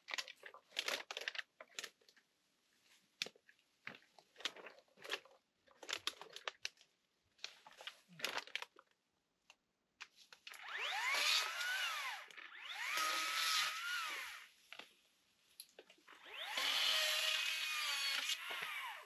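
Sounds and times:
electric chainsaw cutting bamboo: 0:10.6 - 0:14.5, 0:16.2 - 0:19.0.

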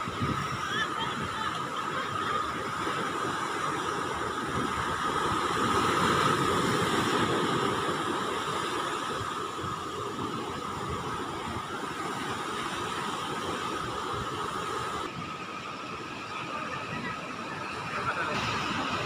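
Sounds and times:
surf breaking on beach: 0:00.0 - 0:19.0
wind on microphone: 0:00.0 - 0:19.0.

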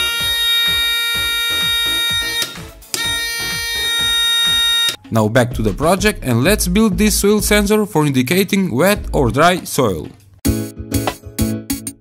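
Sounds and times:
electronic buzzer tone: 0:00.0 - 0:05.0
background music with a beat: 0:00.0 - 0:07.8, 0:08.4 - 0:12.0.

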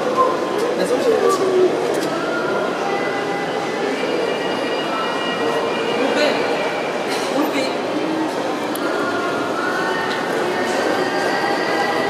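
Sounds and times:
indistinct crowd noise: 0:00.0 - 0:12.0.

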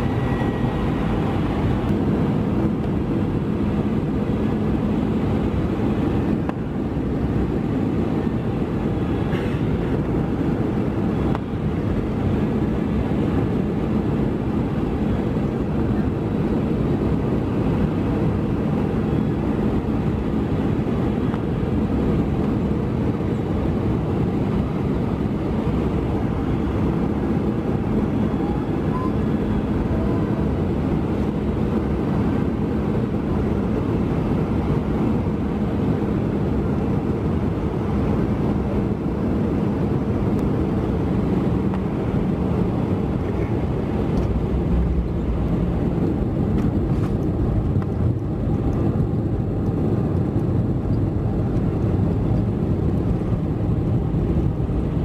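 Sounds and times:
airliner cabin engine noise: 0:00.0 - 0:55.0.

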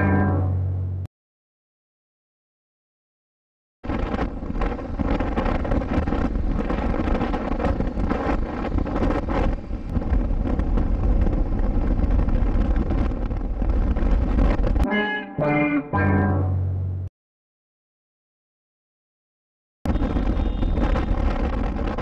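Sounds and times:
music with held notes: 0:00.0 - 0:00.7, 0:14.8 - 0:16.9
wind buffeting microphone: 0:03.8 - 0:14.9, 0:19.9 - 0:22.0
motorcycle engine and road noise: 0:03.9 - 0:14.9, 0:19.9 - 0:22.0.

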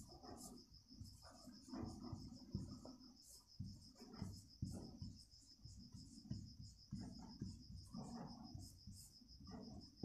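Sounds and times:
insect chirping: 0:00.0 - 0:10.0
marker pen writing on whiteboard: 0:00.0 - 0:10.0.

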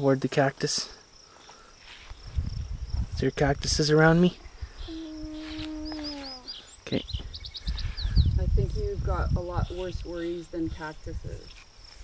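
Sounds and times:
bird chirping: 0:04.1 - 0:08.9
person humming: 0:04.8 - 0:06.5.

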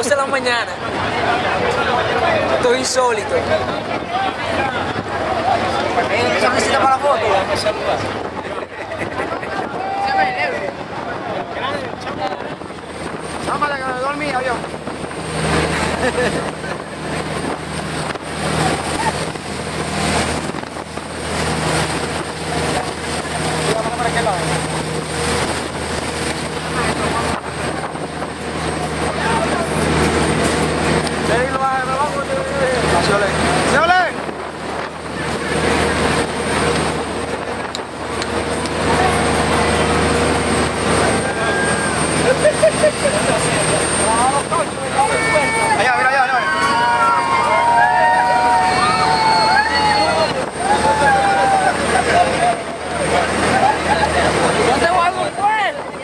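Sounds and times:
boat engine running: 0:00.0 - 0:56.0
passengers talking: 0:00.0 - 0:56.0
rushing water: 0:00.0 - 0:56.0
wind buffeting: 0:00.0 - 0:56.0.

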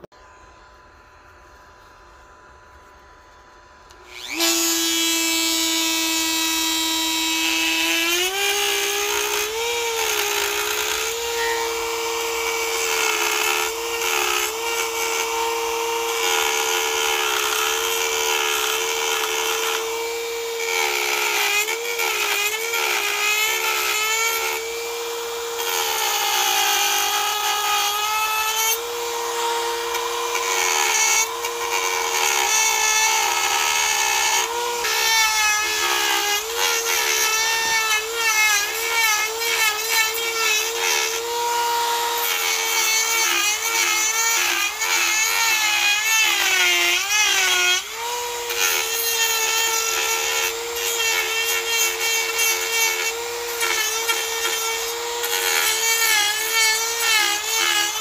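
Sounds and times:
rotary tool whining: 0:01.8 - 0:58.0
cutter biting into wood: 0:03.9 - 0:58.0.

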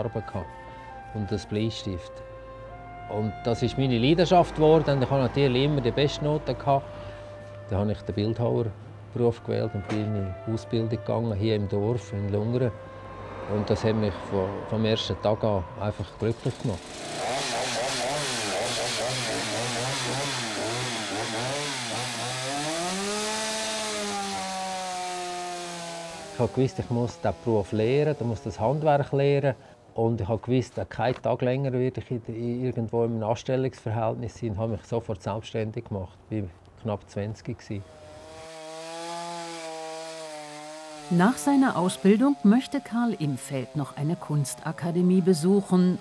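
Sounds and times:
chainsaw cutting wood: 0:16.4 - 0:28.9, 0:37.8 - 0:46.0.

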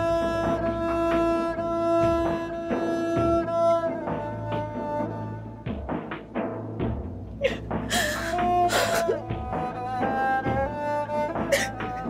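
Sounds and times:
low bowed strings: 0:00.0 - 0:12.0.

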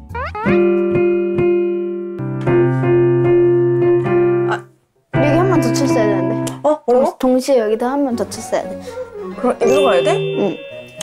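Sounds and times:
piano chords ringing: 0:00.6 - 0:04.6, 0:05.2 - 0:06.5, 0:09.6 - 0:11.0
piano rising glide: 0:09.6 - 0:11.0.

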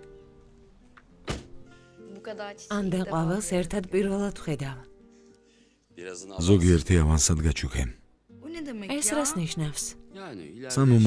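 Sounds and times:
soft background music: 0:00.0 - 0:11.0
car door shutting: 0:01.2 - 0:01.6.

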